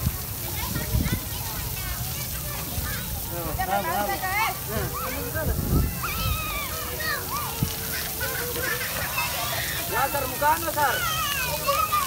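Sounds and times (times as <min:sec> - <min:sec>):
children calling out and squealing: 0:00.0 - 0:12.0
hiss of fountain jets: 0:00.0 - 0:12.0.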